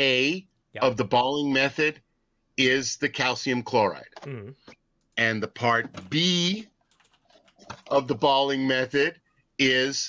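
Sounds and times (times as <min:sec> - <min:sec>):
man speaking: 0:00.0 - 0:02.0, 0:02.6 - 0:06.8.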